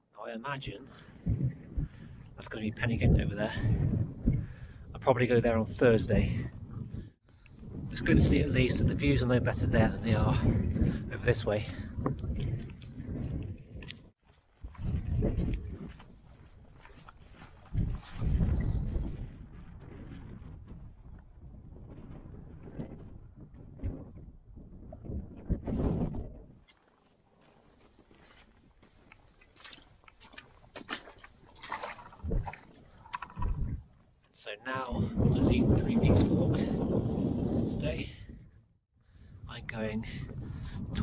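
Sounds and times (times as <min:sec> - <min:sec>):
wind buffeting microphone: 0:00.9 - 0:26.7, 0:30.3 - 0:34.0, 0:34.7 - 0:41.0.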